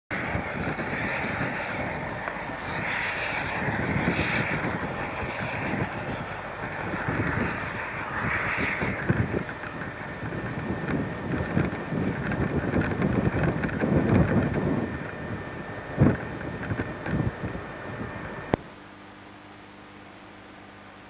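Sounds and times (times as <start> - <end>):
wind buffeting microphone: 0.1 - 18.6
distant steam locomotive: 0.1 - 21.0.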